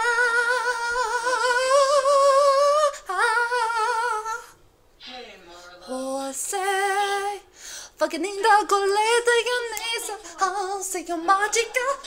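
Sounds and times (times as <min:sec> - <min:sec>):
girl singing unaccompanied: 0:00.0 - 0:04.6, 0:05.8 - 0:12.0
girl breathing: 0:07.5 - 0:08.0.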